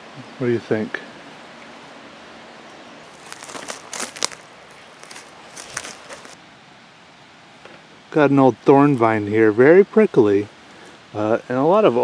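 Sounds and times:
faint hiss: 0.0 - 12.0
dry twigs and leaves crackling: 3.0 - 6.4.

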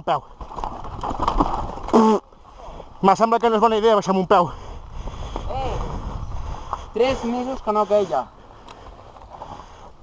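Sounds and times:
mountain bike tyre noise: 0.0 - 10.0
wind rushing on microphone: 4.8 - 7.6.

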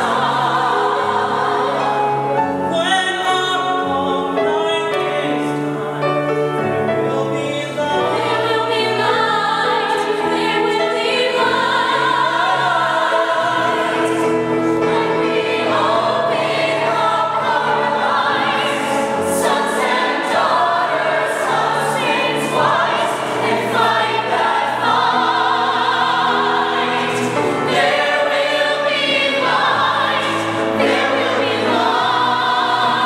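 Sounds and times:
choir singing in harmony: 0.0 - 33.0.

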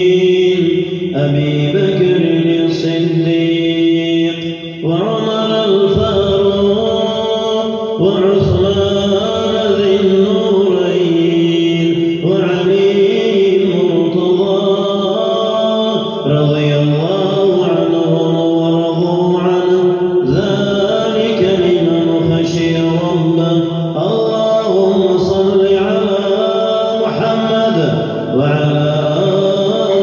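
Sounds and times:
man chanting a recitation: 0.0 - 30.0.

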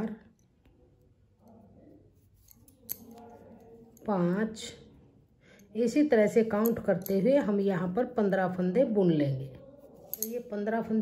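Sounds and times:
knitting needles clicking: 10.0 - 10.4.

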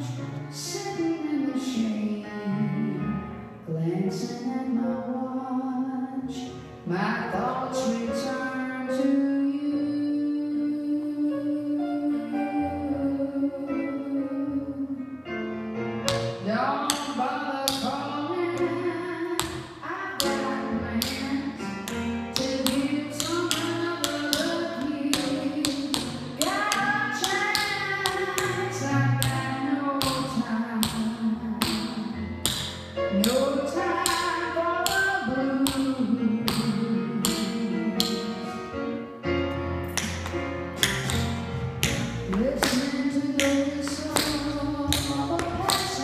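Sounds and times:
music with gliding melody: 0.0 - 46.0
tap shoes on hardwood floor: 40.0 - 46.0.

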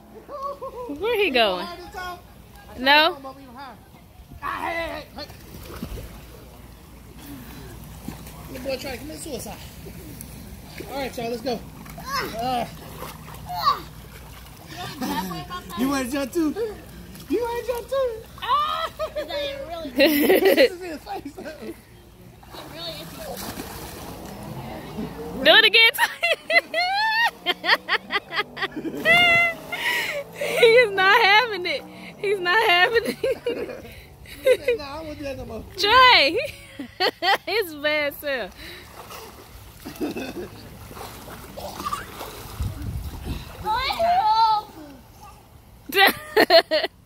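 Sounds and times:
pool water splashing: 0.0 - 47.0
child's high-pitched voice: 13.5 - 13.9.

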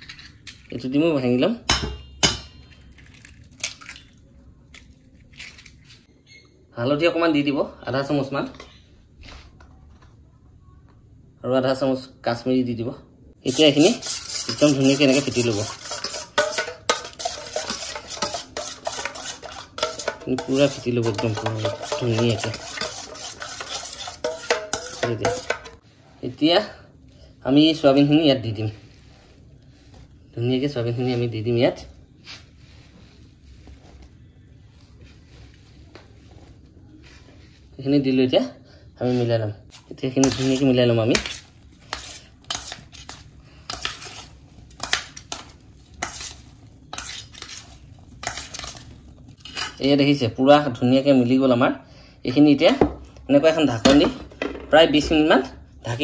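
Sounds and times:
metal bowl ringing: 1.8 - 2.9
spoon clinking against metal bowl: 14.0 - 25.8.

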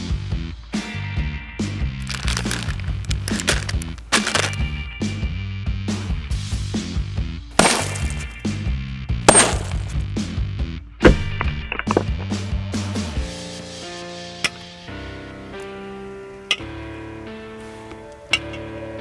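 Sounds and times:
hammer smashing bag of crisps: 2.0 - 4.6, 7.6 - 8.4, 9.3 - 10.0.

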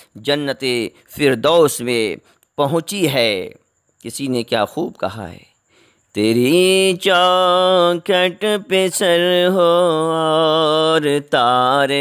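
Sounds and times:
man chanting devotional verse: 0.0 - 12.0.

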